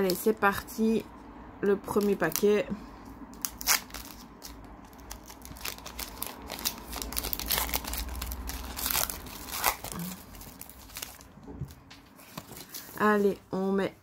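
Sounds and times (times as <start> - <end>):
foil wrapper tearing and crinkling: 3.4 - 11.3.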